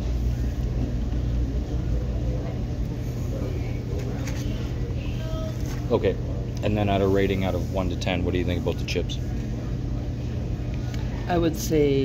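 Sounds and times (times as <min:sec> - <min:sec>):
faint voices: 0:00.0 - 0:12.0
restaurant background rumble: 0:00.0 - 0:12.0.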